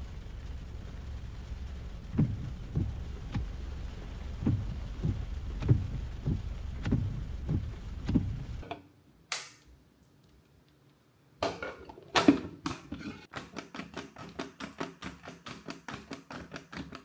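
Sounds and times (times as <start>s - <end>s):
low outdoor rumble: 0.0s - 8.7s
soft regular thumps: 2.0s - 8.8s.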